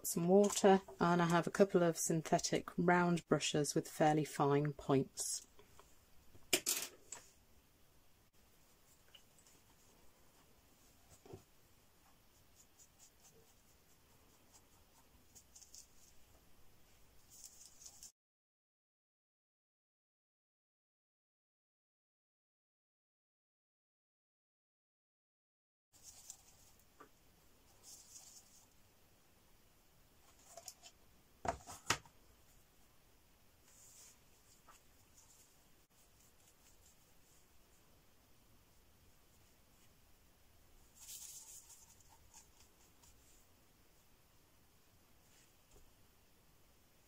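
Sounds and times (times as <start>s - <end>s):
brush scratching on paper: 12.0s - 16.3s, 17.2s - 18.1s, 26.0s - 26.9s, 27.7s - 28.8s, 33.6s - 37.8s, 40.8s - 43.5s.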